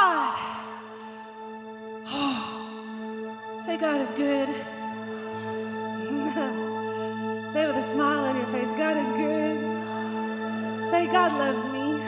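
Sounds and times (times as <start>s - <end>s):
held chord of background music: 0.0s - 12.0s
woman's breathy vocal sound: 2.0s - 3.0s.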